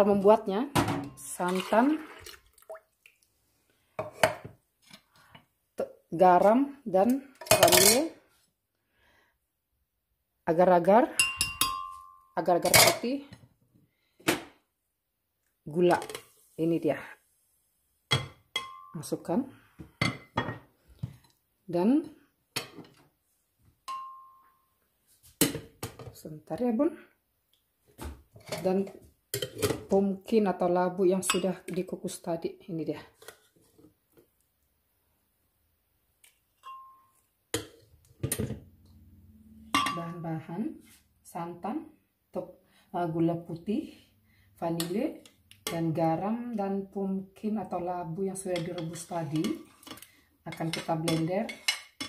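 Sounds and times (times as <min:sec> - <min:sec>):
clinks on glass jar: 0:11.2 - 0:12.9, 0:36.6 - 0:37.1.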